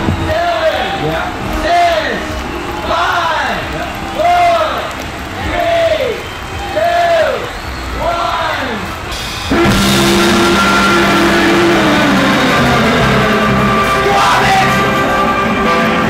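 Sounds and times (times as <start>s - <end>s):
live rock band with saxophone: 8.9s - 16.0s.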